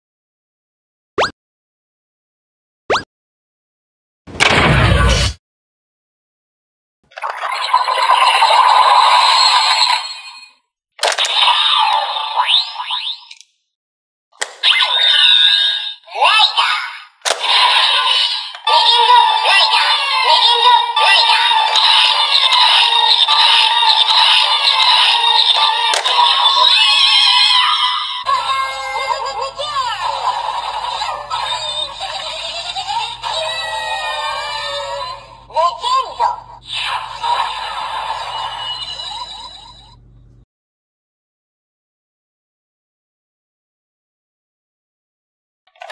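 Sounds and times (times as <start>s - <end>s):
announcer voice shouting: 16.1s - 17.1s
upbeat electronic toy music: 17.3s - 39.9s.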